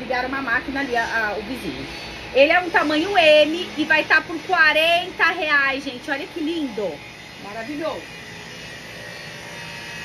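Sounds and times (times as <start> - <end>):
machine running with high whine: 0.0 - 10.0.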